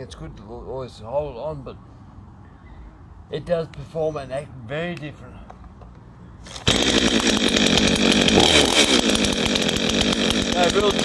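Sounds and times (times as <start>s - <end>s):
chainsaw running: 6.4s - 11.0s.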